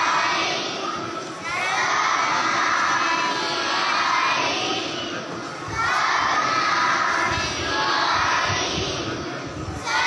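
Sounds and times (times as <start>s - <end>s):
children shouting in unison: 0.0s - 9.2s.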